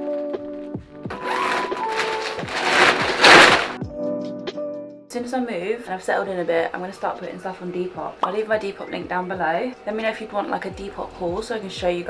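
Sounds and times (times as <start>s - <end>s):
background music: 0.0s - 12.0s
plastic bag crinkling and rustling: 1.1s - 3.8s.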